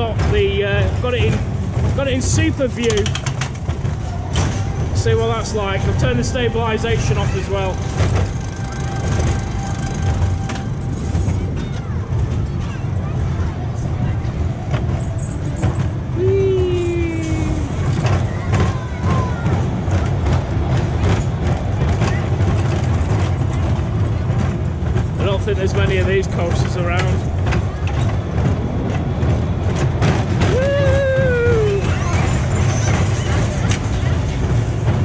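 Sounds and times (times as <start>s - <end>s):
riders' voices: 0.0s - 4.3s, 4.9s - 10.2s, 11.4s - 28.5s
roller coaster wheels rumbling: 0.0s - 35.0s
track clatter: 0.0s - 35.0s.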